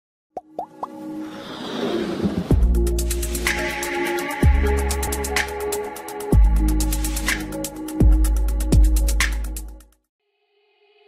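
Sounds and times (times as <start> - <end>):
electronic plops rising in pitch: 0.4 - 1.0.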